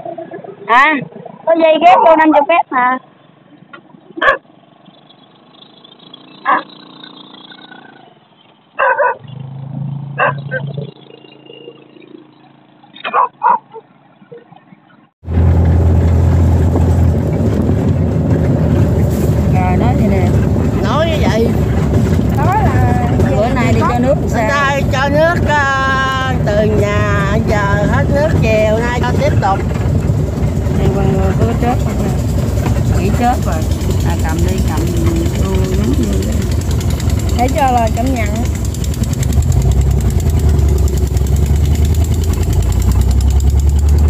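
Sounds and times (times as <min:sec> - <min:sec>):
people talking: 0:00.0 - 0:03.0, 0:19.4 - 0:29.8, 0:30.6 - 0:38.7
loud steady engine running: 0:15.2 - 0:44.0.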